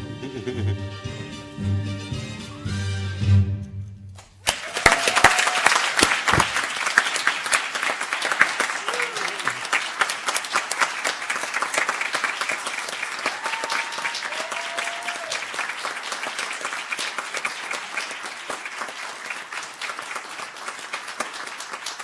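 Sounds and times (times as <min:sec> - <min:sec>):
audience applauding: 0:04.4 - 0:22.0.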